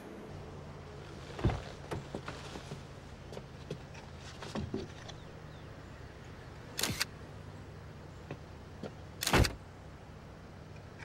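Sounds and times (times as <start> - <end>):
camera shutter release: 6.8 - 7.1.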